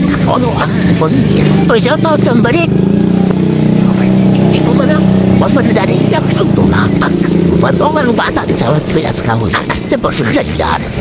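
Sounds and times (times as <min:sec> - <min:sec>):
engine humming: 0:00.0 - 0:11.0
people talking: 0:00.0 - 0:11.0.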